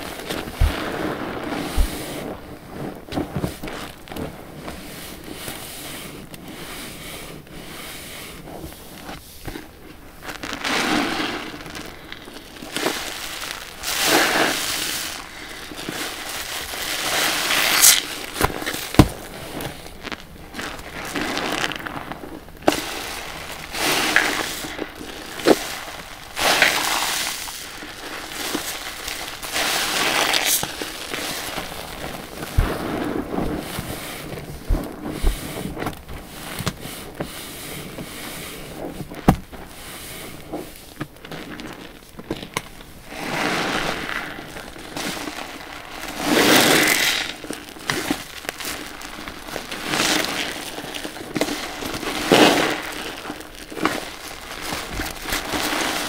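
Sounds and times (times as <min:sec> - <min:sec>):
sharp foam pops: 0:11.9 - 0:22.0, 0:22.6 - 0:37.4, 0:38.7 - 0:39.8.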